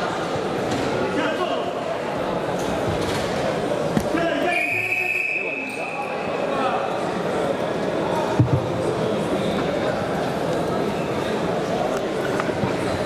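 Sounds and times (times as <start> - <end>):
voices in echoing hall: 0.0 - 13.0
referee's whistle blast: 4.5 - 6.1.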